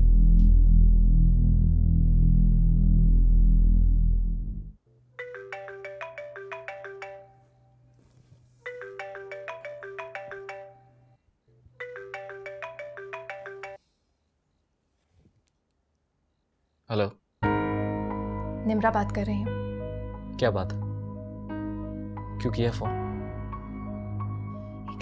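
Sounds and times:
phone ringtone melody: 5.2 - 7.8, 8.7 - 11.2, 11.8 - 13.8.

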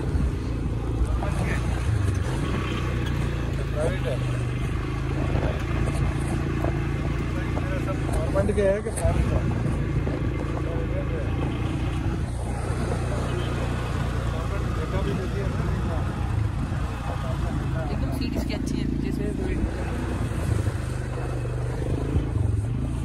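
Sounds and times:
quad bike engine running: 0.0 - 23.0.

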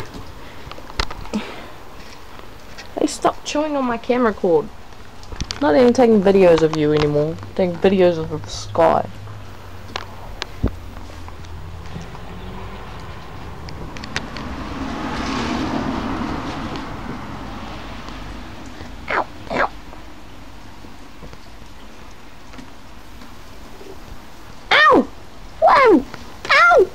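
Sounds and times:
steady rain: 0.0 - 26.9
rushing noise: 9.2 - 19.5
puppy whining: 19.1 - 19.8.

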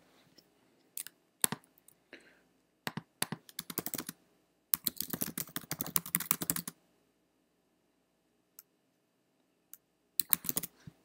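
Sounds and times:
typing on computer keyboard: 1.0 - 1.7, 2.9 - 4.2, 4.8 - 6.8, 10.2 - 10.8.

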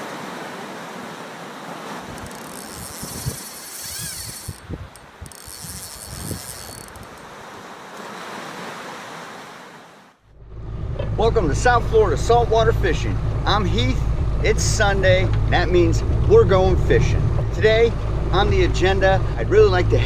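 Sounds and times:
sea rushing: 0.0 - 20.0
wind: 0.0 - 20.0.

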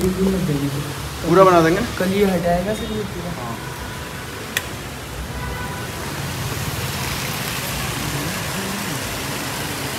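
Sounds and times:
road traffic hiss: 0.0 - 9.9.

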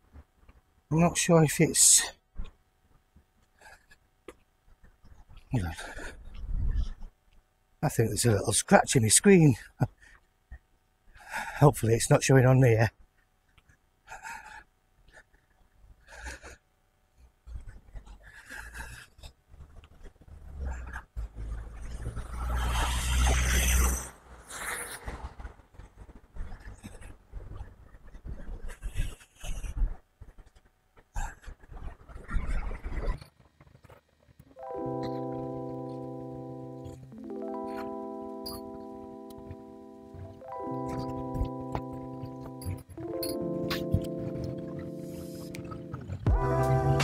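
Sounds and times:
background music with held chords: 34.5 - 47.0.

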